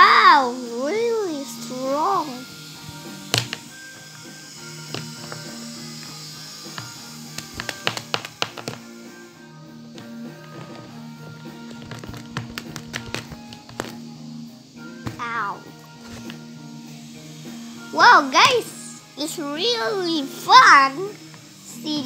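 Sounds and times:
background music: 0.0 - 22.0
plastic toys knocking on wood: 3.3 - 3.7, 4.9 - 5.5, 6.7 - 8.9, 11.6 - 14.0.

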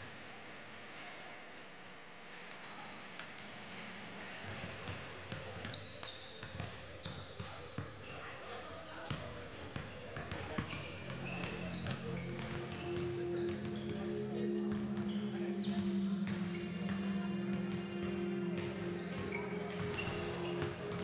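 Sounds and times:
sneaker squeaks: 2.6 - 3.2, 5.6 - 8.5, 9.2 - 21.0
music: 11.6 - 21.0
basketballs bouncing on wood floor: 11.8 - 21.0.

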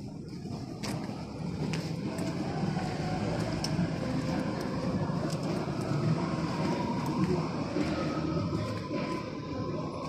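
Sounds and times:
city street traffic rumble: 0.0 - 10.0.

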